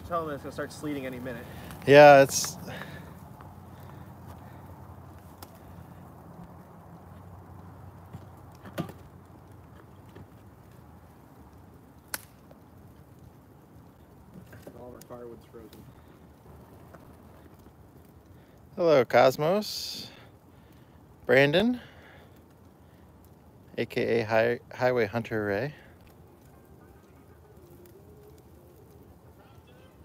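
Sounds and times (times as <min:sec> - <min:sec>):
fire burning in a barrel: 0:00.0 - 0:30.0
fire cracks: 0:00.0 - 0:30.0.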